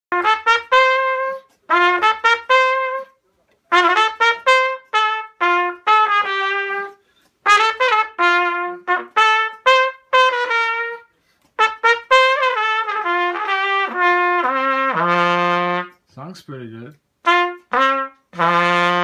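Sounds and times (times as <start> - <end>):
cornet playing short phrases: 0.1 - 19.0.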